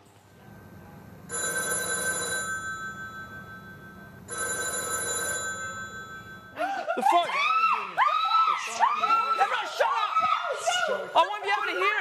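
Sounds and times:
telephone ringing: 1.3s - 6.6s
excited shouting voices: 7.0s - 12.0s.

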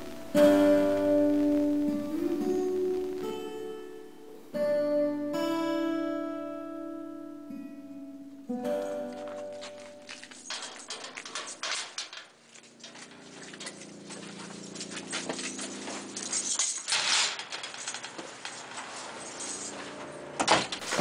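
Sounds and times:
metal security gate rattling: 8.7s - 21.0s.

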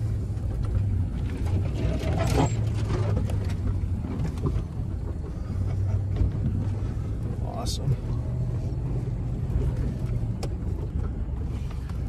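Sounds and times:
truck engine running at low speed: 0.0s - 12.0s.

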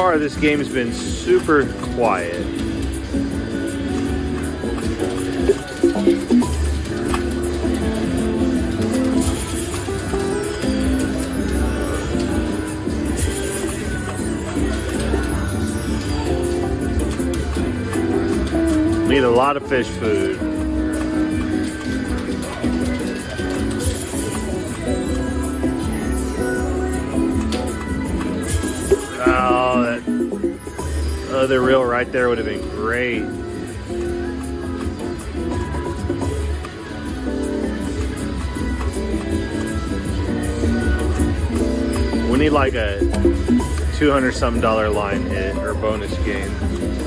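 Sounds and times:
slot machine game music: 0.0s - 47.0s.

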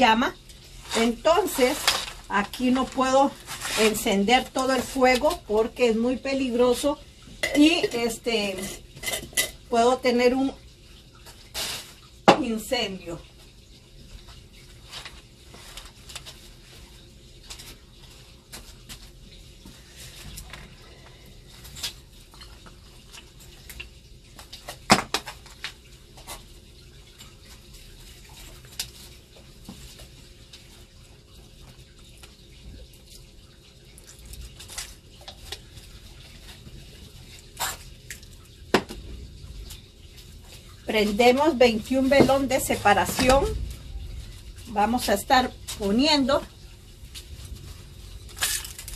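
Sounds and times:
mixture crackling and popping: 0.0s - 48.9s.

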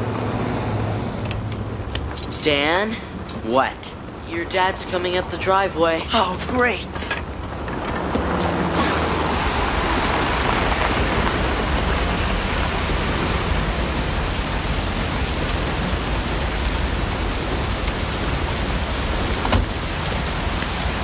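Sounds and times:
steady rain falling: 0.0s - 21.0s.

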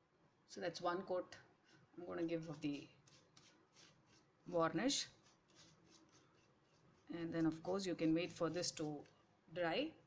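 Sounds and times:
paintbrush strokes: 1.4s - 9.4s.

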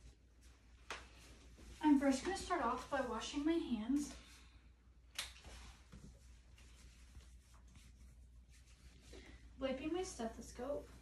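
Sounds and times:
low room hum: 0.0s - 11.0s
hands rubbing together: 5.4s - 9.1s.

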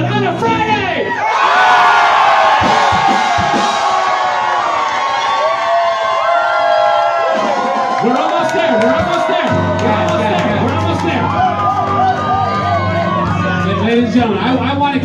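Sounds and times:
music: 0.0s - 5.7s, 6.8s - 15.0s
crowd cheering and screaming: 1.0s - 14.2s.

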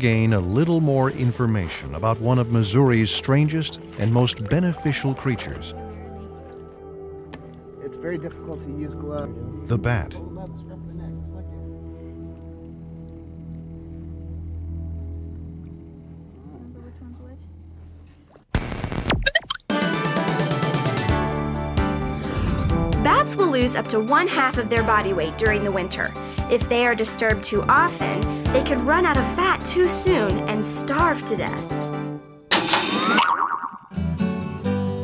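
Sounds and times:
low background music: 0.0s - 16.4s, 19.7s - 32.4s
crickets trilling: 8.9s - 18.5s
cartoon boing sound effect: 32.9s - 34.0s.

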